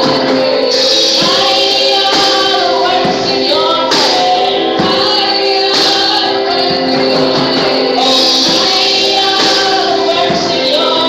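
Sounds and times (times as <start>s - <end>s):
women singing gospel song: 0.0s - 11.0s.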